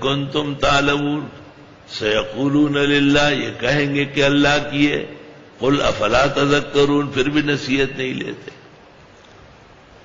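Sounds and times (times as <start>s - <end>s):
man chanting melodic recitation: 0.0s - 8.6s.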